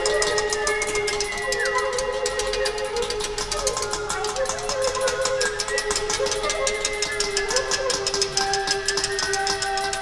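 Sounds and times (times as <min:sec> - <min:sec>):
fast even ticking: 0:00.0 - 0:10.0
flute and clarinet playing: 0:00.0 - 0:10.0.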